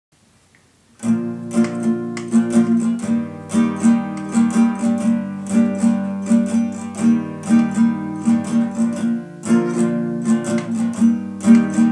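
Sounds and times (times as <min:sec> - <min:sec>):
classical guitar fingerstyle: 0:00.9 - 0:11.9.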